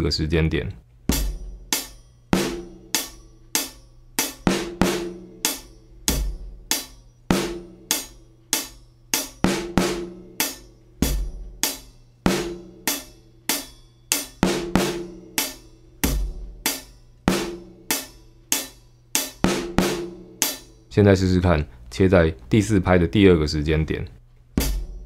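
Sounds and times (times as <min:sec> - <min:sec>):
bass drum: 0:01.0 - 0:02.9, 0:06.0 - 0:07.7, 0:11.0 - 0:11.7, 0:16.0 - 0:17.8, 0:24.5 - 0:25.0
hi-hat strokes: 0:01.0 - 0:20.9, 0:24.6 - 0:25.0.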